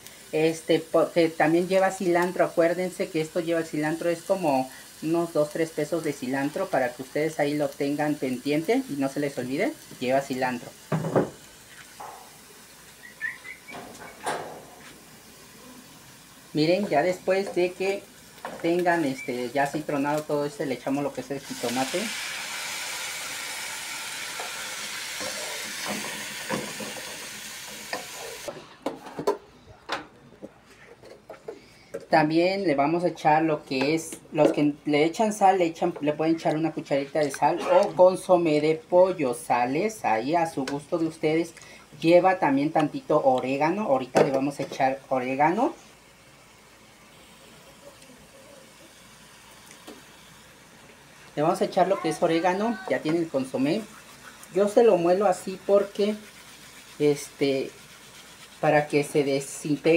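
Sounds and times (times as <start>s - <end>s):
vegetables sizzling in frying pan: 0.0s - 14.2s, 14.8s - 28.5s, 38.1s - 59.9s
wooden spoon scraping a pan: 53.1s - 59.6s.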